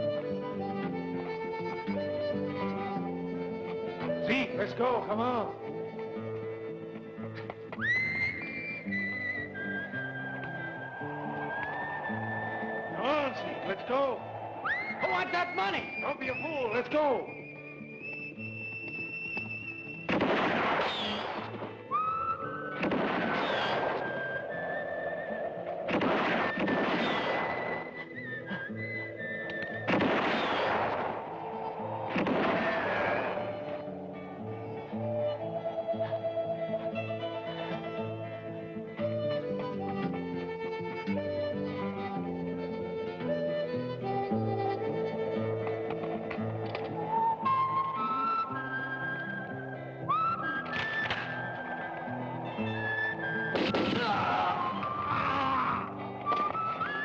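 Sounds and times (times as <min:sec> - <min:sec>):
film score held notes: 0:00.0 - 0:57.0
gunshots ringing out: 0:20.1 - 0:21.6, 0:22.8 - 0:24.2, 0:25.9 - 0:27.8, 0:29.9 - 0:31.2, 0:32.1 - 0:33.7, 0:53.5 - 0:54.9.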